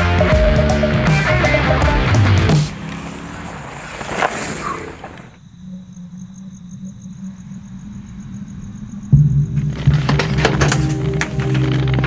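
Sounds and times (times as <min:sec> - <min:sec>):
gravel crunching: 0:00.9 - 0:05.5, 0:09.5 - 0:12.0
bike tyres on dirt trail: 0:02.1 - 0:05.4, 0:09.5 - 0:12.0.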